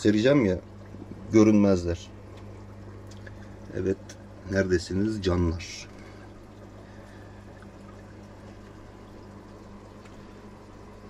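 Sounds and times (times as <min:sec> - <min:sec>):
aquarium equipment humming: 0:00.0 - 0:11.0.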